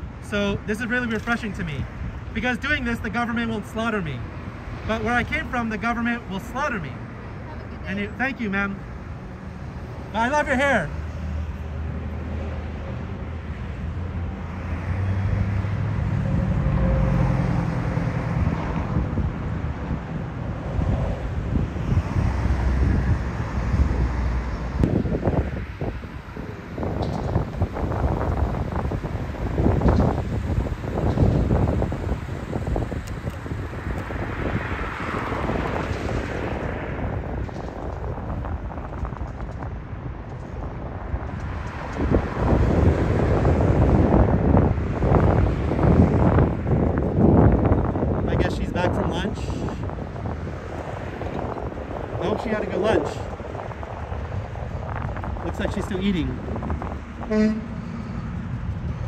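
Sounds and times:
passing road traffic: 0.0s - 59.0s
wind buffeting microphone: 0.0s - 59.0s
vehicle engine: 0.9s - 59.0s.

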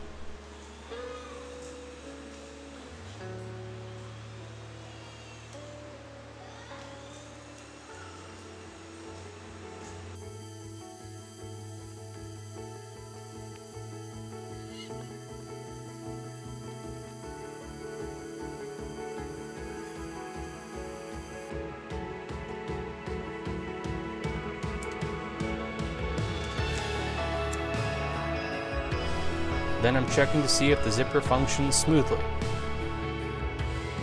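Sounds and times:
background music with sustained chords: 0.0s - 34.0s.

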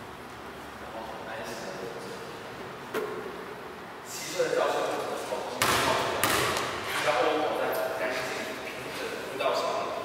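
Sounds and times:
ball striking body and feet: 5.6s - 7.0s.

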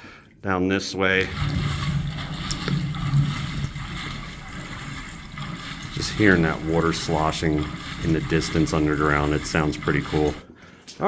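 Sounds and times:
water sloshing in a tunnel: 1.2s - 10.6s.

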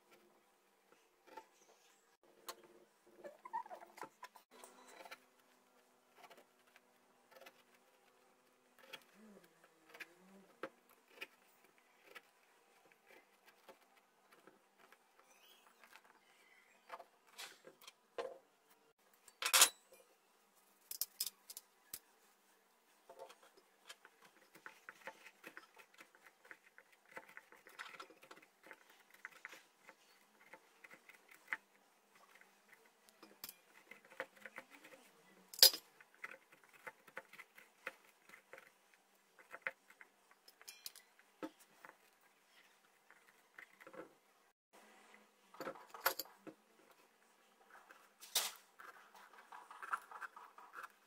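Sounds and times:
small crackles and squelches: 0.0s - 19.3s, 19.9s - 51.0s.

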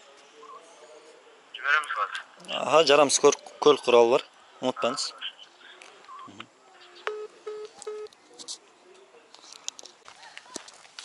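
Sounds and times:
phone busy tone: 7.1s - 8.1s
short beeps: 7.1s - 8.1s.

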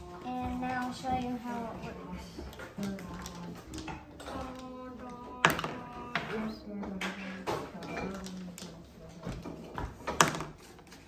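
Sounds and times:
marble clicking on wooden track: 0.6s - 10.9s.

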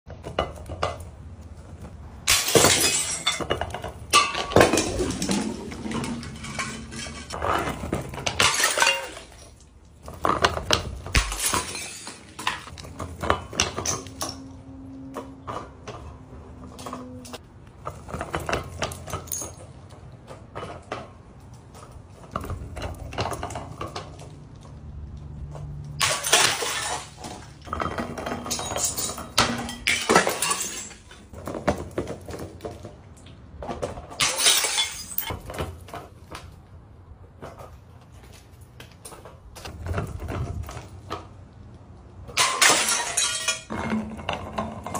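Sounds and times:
glass jars clinking and shattering: 2.3s - 7.4s, 8.3s - 9.6s, 11.1s - 12.7s, 26.0s - 31.3s, 34.2s - 35.3s, 42.4s - 44.9s.

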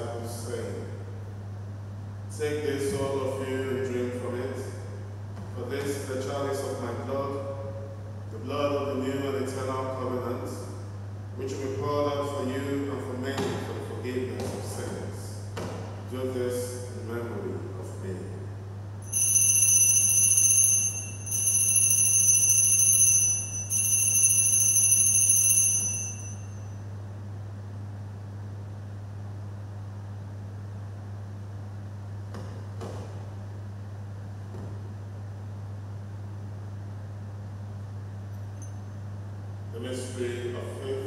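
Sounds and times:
steady low hum: 0.0s - 41.0s
altar bells ringing: 19.0s - 26.8s.

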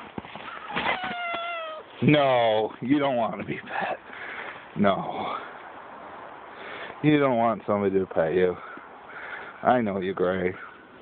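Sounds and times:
cat meowing: 0.7s - 1.9s.

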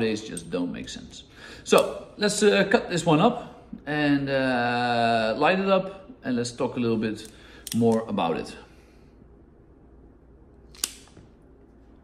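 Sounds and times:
cigar cutter snipping: 10.7s - 11.2s.

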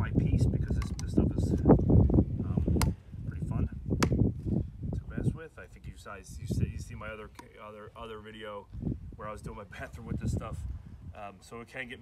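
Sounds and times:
plastic pipe fittings clicking: 0.7s - 1.2s.

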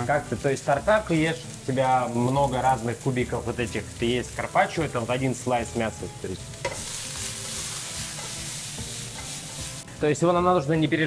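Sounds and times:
vegetables sizzling in oil: 0.0s - 11.0s.

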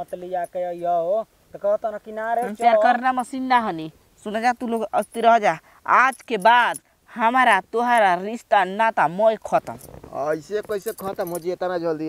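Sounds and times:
bangles jingling: 0.0s - 1.2s, 1.8s - 11.9s.

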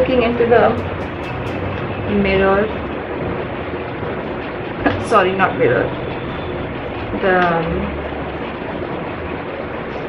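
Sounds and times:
electric fan running: 0.0s - 10.0s.

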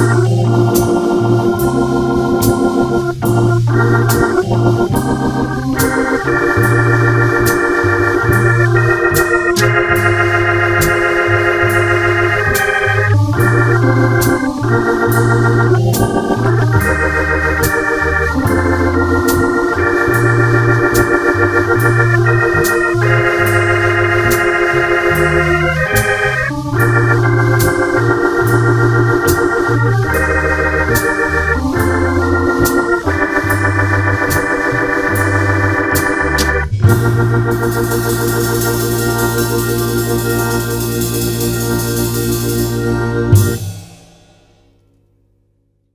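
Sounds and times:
moving bass line: 0.0s - 44.1s
drums keeping a light beat: 0.0s - 44.8s
organ playing held chords: 0.0s - 44.8s.

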